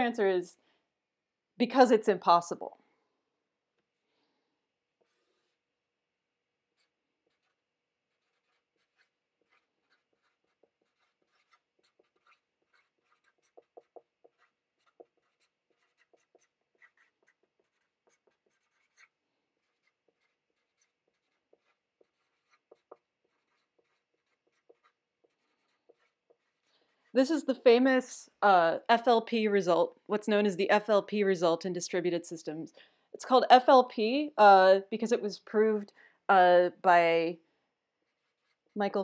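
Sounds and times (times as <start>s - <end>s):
marker squeaking on whiteboard: 5.0s - 5.6s, 6.7s - 27.2s, 38.0s - 38.8s.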